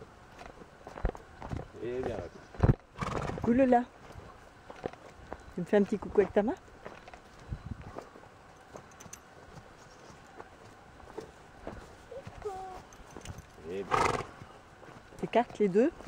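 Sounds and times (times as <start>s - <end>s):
hooves thudding on grass: 0.0s - 16.0s.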